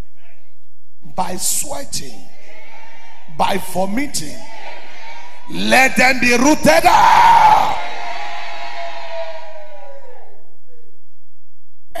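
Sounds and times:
echoing shouted prayer: 0:00.2 - 0:10.4.

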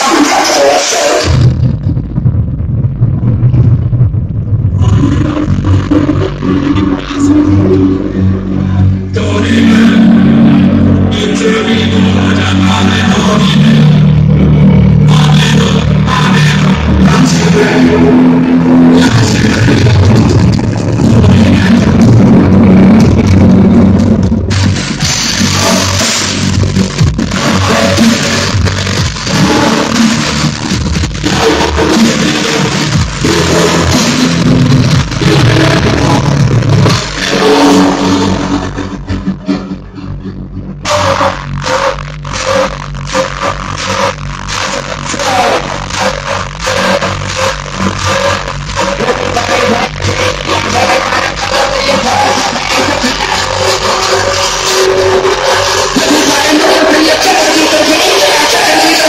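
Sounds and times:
loud distorted hardcore techno: 0:00.0 - 0:59.0.

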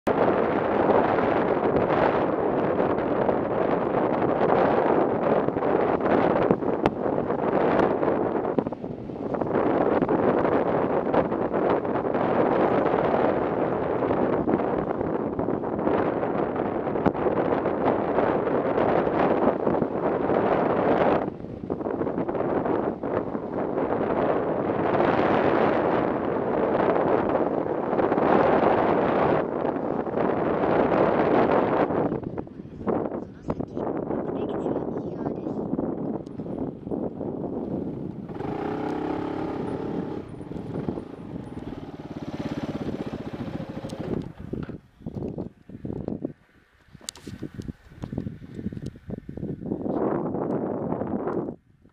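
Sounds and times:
wind rushing over microphone: 0:00.0 - 0:51.9.

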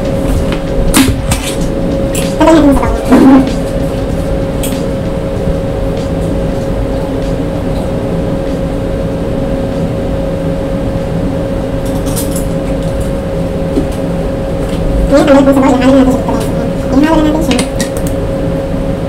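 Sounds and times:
mechanical hum: 0:00.0 - 0:19.0.

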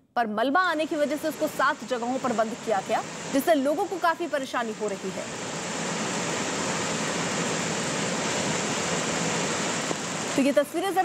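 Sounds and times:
rain and running water: 0:00.8 - 0:11.0.

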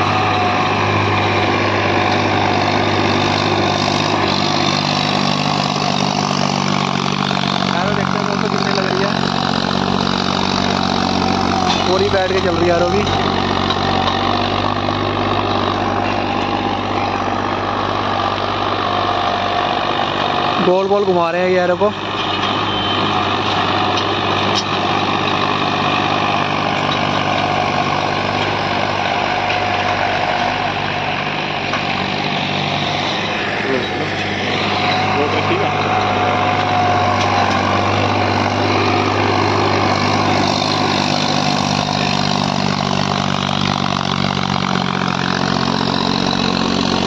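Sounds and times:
tractor diesel engine running: 0:00.0 - 0:47.0.

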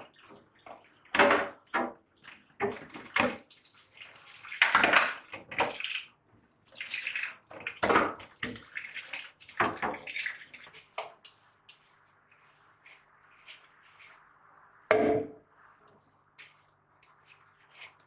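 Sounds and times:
water splashing and sloshing: 0:00.0 - 0:18.0.

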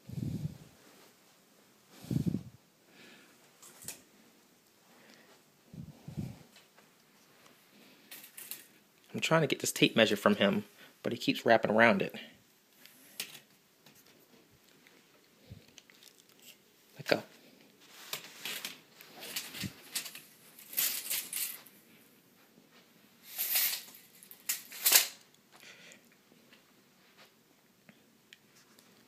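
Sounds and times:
rustling and scuffing of handling: 0:17.8 - 0:25.0.

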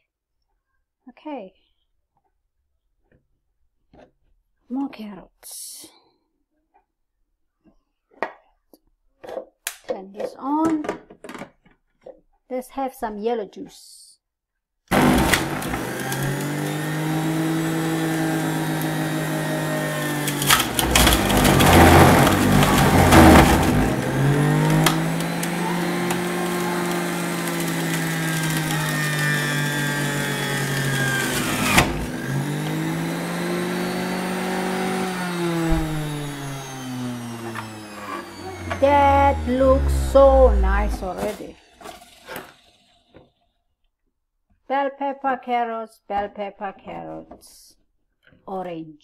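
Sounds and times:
carrots grinding in cutter: 0:14.9 - 0:42.7
juicer motor hum: 0:14.9 - 0:42.7.

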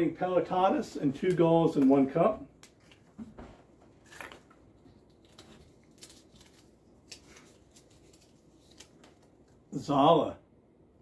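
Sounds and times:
paper rustling: 0:04.0 - 0:09.6.

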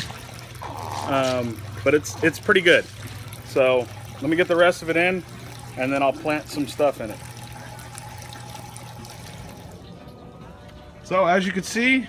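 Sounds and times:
water trickling through pebbles: 0:00.0 - 0:11.7.

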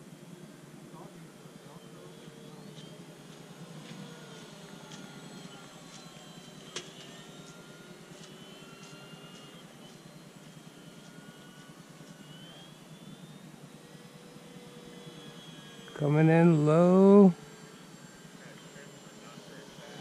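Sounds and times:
model plane motors whining: 0:00.0 - 0:20.0.

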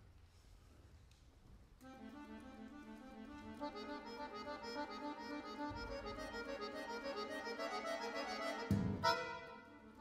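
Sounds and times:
accordion playing: 0:01.8 - 0:10.0.

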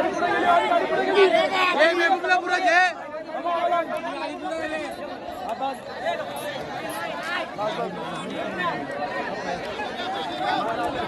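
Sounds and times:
men's crowd chatter: 0:00.0 - 0:11.0.

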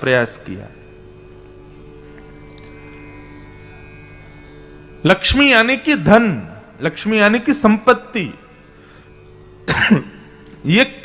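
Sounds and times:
hum of held tones: 0:00.0 - 0:11.0.

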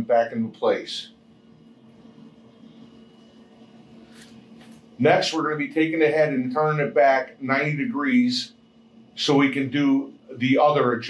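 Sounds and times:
inkjet printer humming: 0:00.0 - 0:11.0.

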